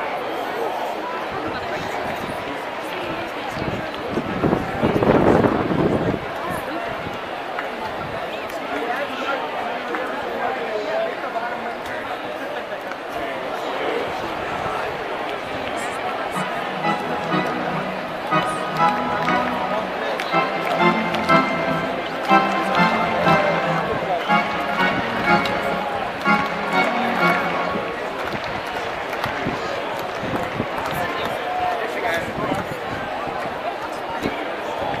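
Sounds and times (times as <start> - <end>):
crowd murmur: 15.7 - 29.0
fans talking: 15.8 - 28.9
music over sound system: 16.3 - 28.2.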